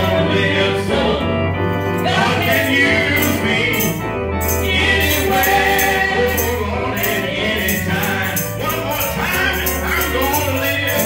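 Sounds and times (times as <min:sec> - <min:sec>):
gospel song sung into microphone: 0:00.0 - 0:11.0
instrumental accompaniment: 0:00.0 - 0:11.0
tambourine-like shaking rhythm: 0:01.7 - 0:11.0.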